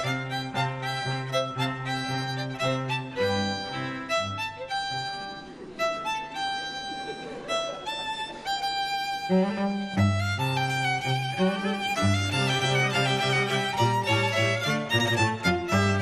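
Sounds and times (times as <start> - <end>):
cello line: 0.0 - 16.0
violins playing: 0.0 - 16.0.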